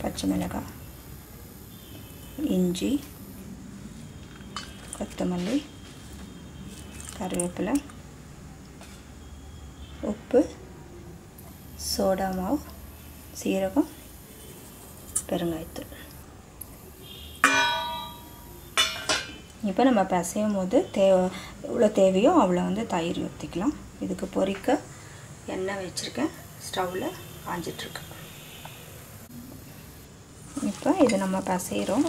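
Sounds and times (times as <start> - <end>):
woman talking: 2.4 - 3.1, 5.0 - 5.7, 7.2 - 7.9, 10.0 - 10.6, 11.8 - 12.7, 13.4 - 14.0, 15.2 - 16.0, 19.6 - 24.9, 25.5 - 28.3, 30.5 - 32.0
metal spoon striking metal bowl: 17.4 - 19.4
hand mixing dough in steel bowl: 30.4 - 32.0.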